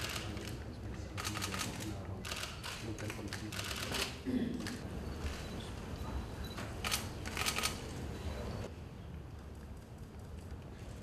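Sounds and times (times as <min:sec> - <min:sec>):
camera shutters clicking: 0:00.0 - 0:00.6, 0:01.2 - 0:04.8, 0:06.8 - 0:07.9.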